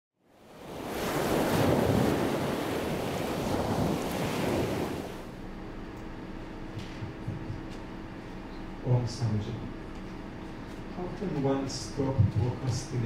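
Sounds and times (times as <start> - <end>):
rushing surf-like noise: 0.4 - 5.4.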